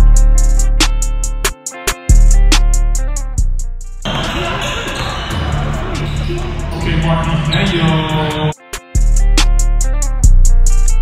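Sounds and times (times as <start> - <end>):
music playing: 0.0 - 11.0
din of voices: 4.1 - 8.6.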